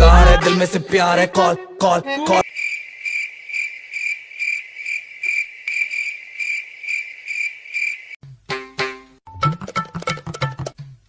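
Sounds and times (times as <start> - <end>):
music: 0.0 - 2.4, 8.2 - 11.0
cricket chirping: 2.4 - 8.2.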